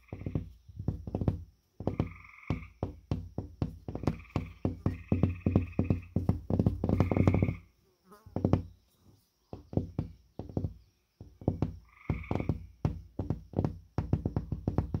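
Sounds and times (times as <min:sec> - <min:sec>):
fingers tapping on drywall: 0:00.0 - 0:07.6, 0:08.3 - 0:08.8, 0:09.5 - 0:15.0.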